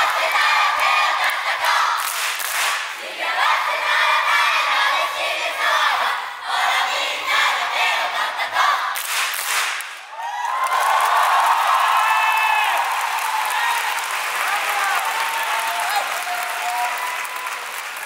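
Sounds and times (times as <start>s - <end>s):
audience clapping: 0.0s - 3.0s, 9.0s - 18.0s
crowd screaming and whooping: 10.1s - 18.0s.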